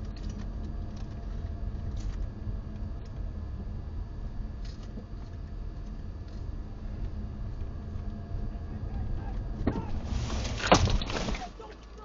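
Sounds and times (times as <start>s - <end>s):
car cabin rumble: 0.0s - 12.0s
man shouting outside: 8.9s - 10.0s, 11.3s - 12.0s.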